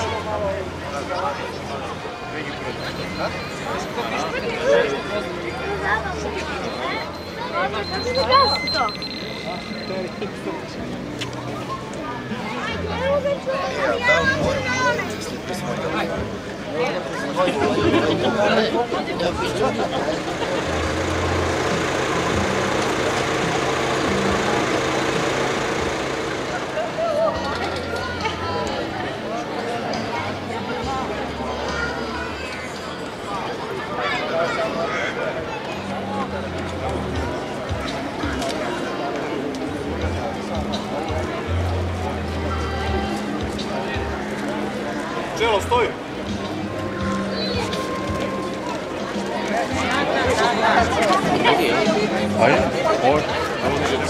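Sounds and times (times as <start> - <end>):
outdoor crowd chatter: 0.0 - 54.0
vehicle engine idling: 19.4 - 28.8.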